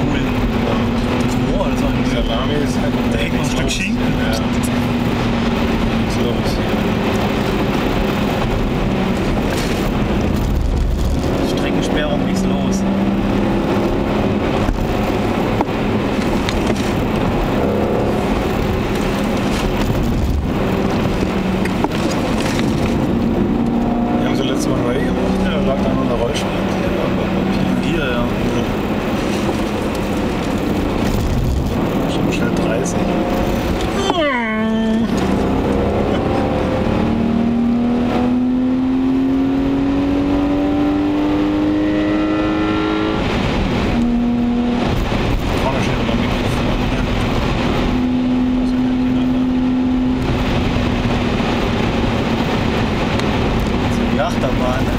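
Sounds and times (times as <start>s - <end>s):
car engine accelerating from inside: 0.0s - 54.9s.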